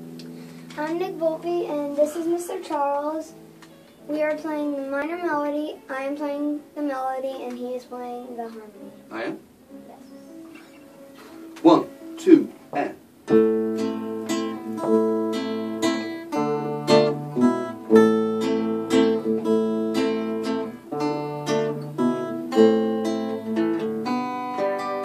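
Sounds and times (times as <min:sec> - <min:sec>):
acoustic guitar duet: 0:00.0 - 0:25.0.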